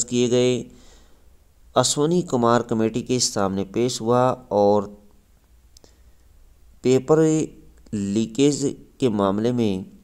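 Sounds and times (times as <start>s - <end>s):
person narrating: 0.0s - 0.8s, 1.7s - 5.2s, 6.8s - 10.0s
faint clicks: 5.4s - 6.3s.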